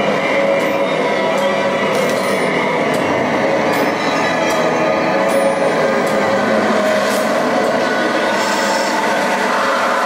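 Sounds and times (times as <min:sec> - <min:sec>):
loud steady drone: 0:00.0 - 0:10.0.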